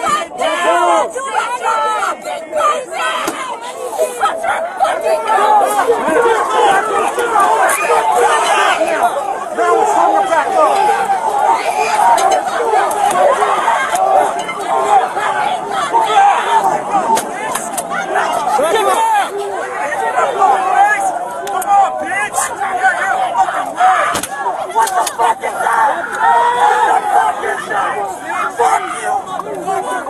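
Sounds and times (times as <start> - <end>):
crowd of protesters shouting: 0.0 - 30.0.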